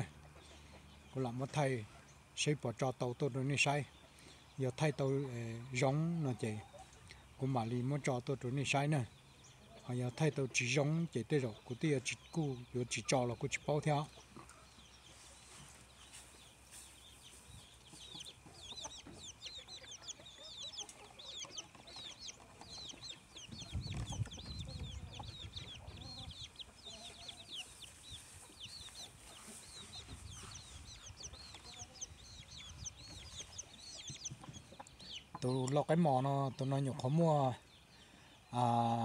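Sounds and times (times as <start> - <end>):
chicken clucking: 0.0 - 37.6
chicks chirping: 0.0 - 39.0.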